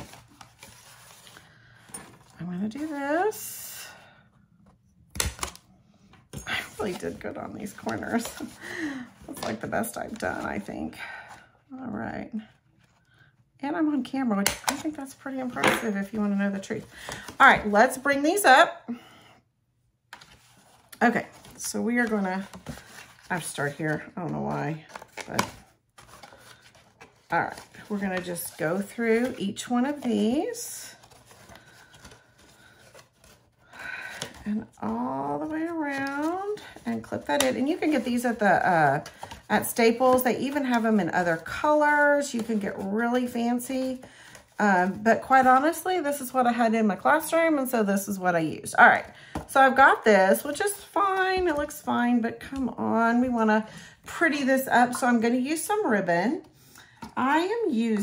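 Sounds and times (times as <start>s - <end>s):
cardstock handling: 0.0s - 2.9s, 6.3s - 10.7s, 20.1s - 34.8s, 35.4s - 41.6s.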